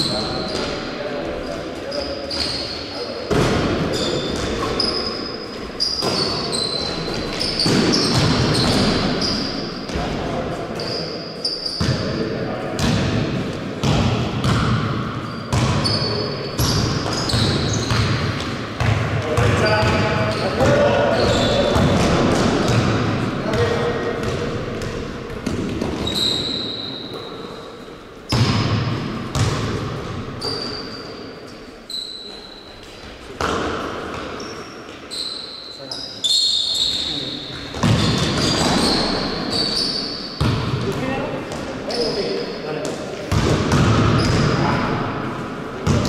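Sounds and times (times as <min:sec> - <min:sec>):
sneakers squeaking on court: 0:00.0 - 0:10.0, 0:10.7 - 0:13.2, 0:13.8 - 0:45.1
basketball bouncing on gym floor: 0:03.3 - 0:05.0, 0:05.6 - 0:10.2, 0:11.8 - 0:12.2, 0:12.8 - 0:27.4, 0:28.3 - 0:30.9, 0:32.7 - 0:35.0, 0:36.8 - 0:39.7, 0:40.4 - 0:45.1, 0:45.8 - 0:46.0.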